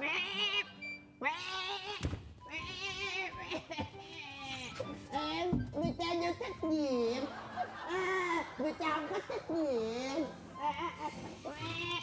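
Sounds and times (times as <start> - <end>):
background music: 0.0 - 12.0
adult imitating baby crying: 9.5 - 12.0.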